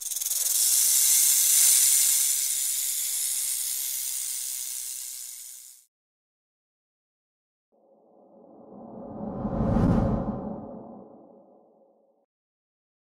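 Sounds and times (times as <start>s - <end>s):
snake hiss: 0.0s - 5.7s.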